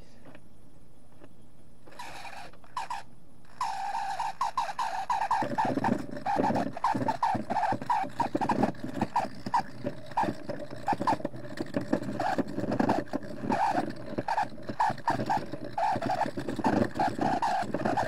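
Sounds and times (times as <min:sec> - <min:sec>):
rough scraping: 0:01.9 - 0:18.0
squeaky scrubbing of wet rock: 0:01.9 - 0:18.0.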